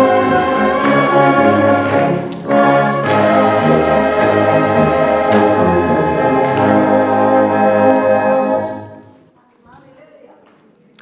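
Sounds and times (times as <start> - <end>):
brass band chord: 0.0 - 9.2.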